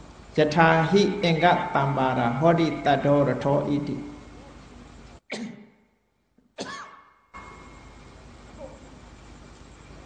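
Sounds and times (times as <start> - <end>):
person coughing: 5.3 - 5.8, 6.6 - 7.0.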